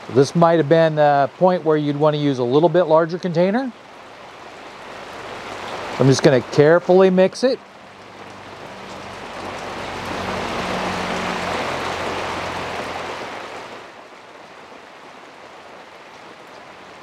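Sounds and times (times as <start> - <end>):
rain falling: 0.0 - 17.0.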